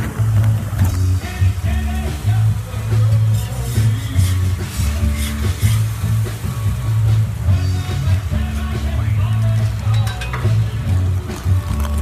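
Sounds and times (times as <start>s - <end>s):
music with prominent bass line: 0.0s - 12.0s.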